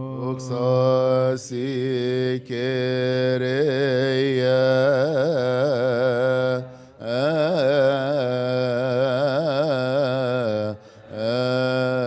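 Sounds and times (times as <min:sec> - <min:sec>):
man chanting a hymn: 0:00.0 - 0:12.0.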